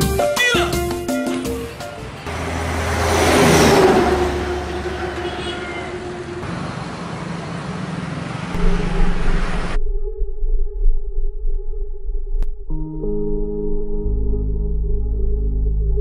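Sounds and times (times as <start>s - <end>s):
traffic noise with engine hum: 1.2s - 8.6s
motor vehicle passing: 1.4s - 9.8s.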